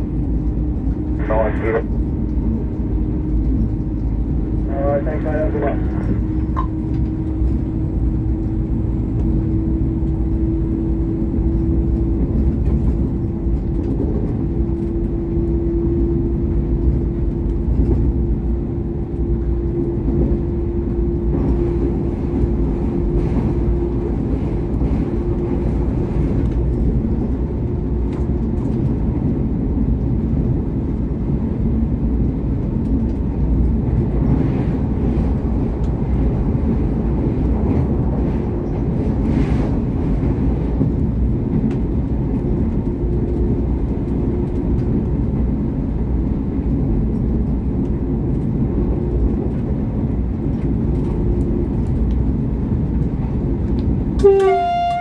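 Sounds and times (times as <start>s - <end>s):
diesel railcar engine drone: 0.0s - 55.0s
rail noise: 0.0s - 55.0s.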